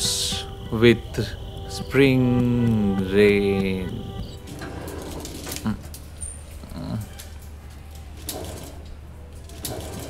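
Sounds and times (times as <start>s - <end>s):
steady low hum: 0.0s - 6.1s
metal gate clicking and rattling: 4.5s - 10.0s.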